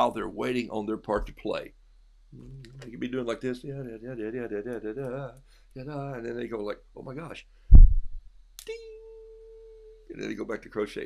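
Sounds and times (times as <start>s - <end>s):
low thump: 7.7s - 8.2s.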